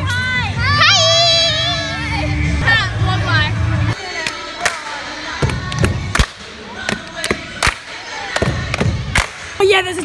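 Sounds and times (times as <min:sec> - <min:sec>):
background music: 0:00.0 - 0:10.0
crowd voices: 0:00.0 - 0:10.0
sharp hand claps: 0:08.4 - 0:09.5.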